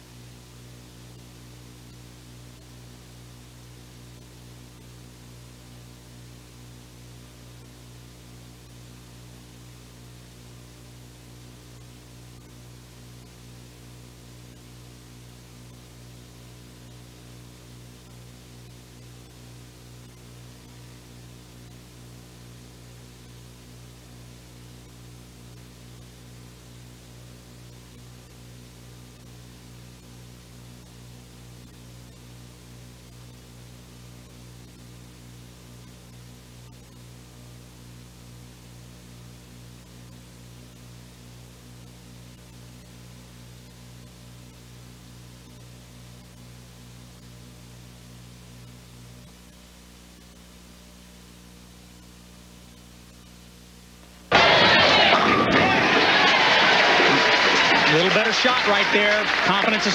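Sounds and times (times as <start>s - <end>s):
electrical mains hum with hiss: 0.0s - 59.9s.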